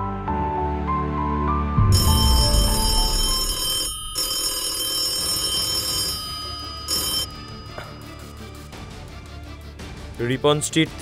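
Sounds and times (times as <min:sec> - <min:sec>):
background music: 0:00.0 - 0:11.0
telephone bell ringing: 0:01.9 - 0:09.0.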